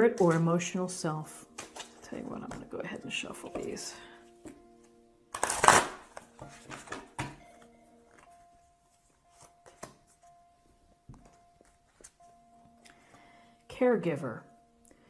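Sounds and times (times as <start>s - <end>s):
soft music of held notes: 0.0s - 15.0s
tarot cards shuffling: 1.5s - 2.7s, 4.4s - 10.3s, 11.2s - 12.3s.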